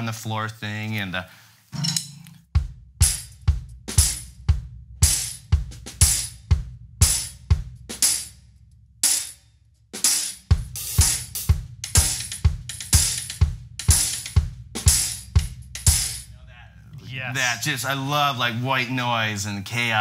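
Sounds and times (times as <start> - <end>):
hi-hat and cymbal hits: 1.8 - 8.4, 9.0 - 9.4, 10.0 - 16.4
bass drum: 1.8 - 9.3, 10.0 - 17.4.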